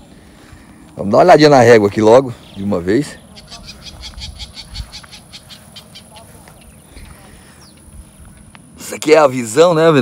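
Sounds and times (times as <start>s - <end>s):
small animal high clicking call: 3.4s - 6.6s.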